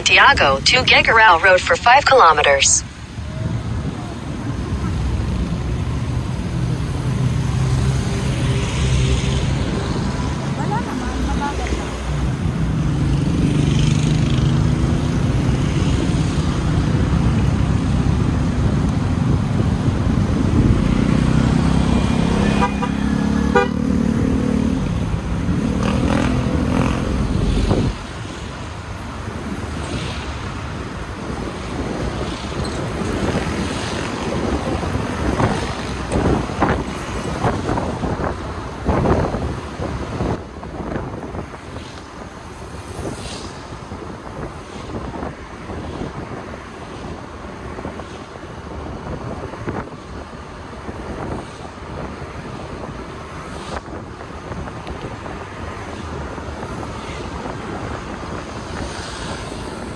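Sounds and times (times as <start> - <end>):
wind and road noise: 0.0 - 59.9
vehicle horn toot: 22.0 - 23.8.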